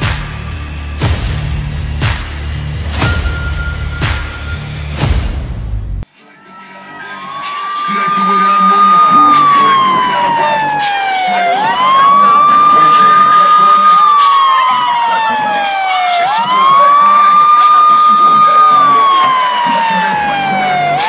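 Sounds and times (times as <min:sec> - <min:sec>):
siren wailing: 0:06.3 - 0:21.0.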